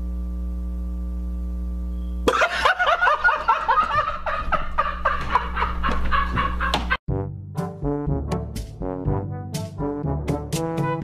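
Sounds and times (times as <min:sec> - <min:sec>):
person laughing hard: 0:02.3 - 0:07.0.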